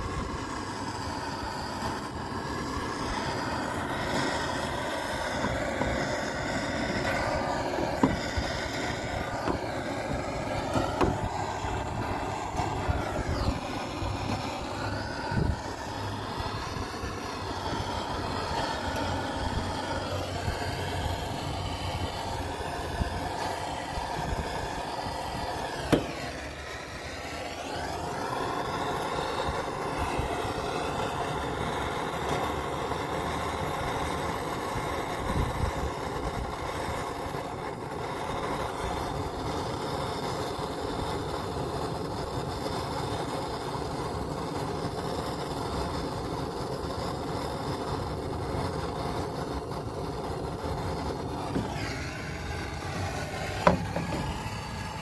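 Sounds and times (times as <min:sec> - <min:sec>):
propane torch hissing: 0:00.0 - 0:55.0.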